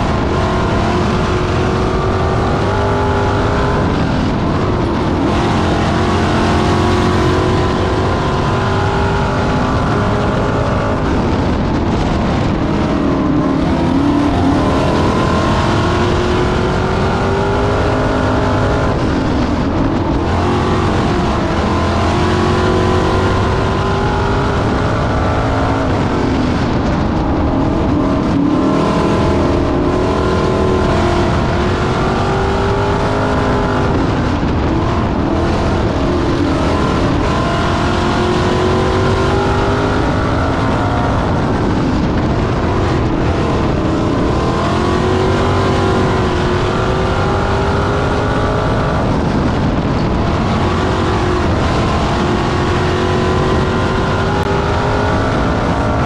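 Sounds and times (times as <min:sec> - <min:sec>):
car engine running hard: 0:00.0 - 0:56.0.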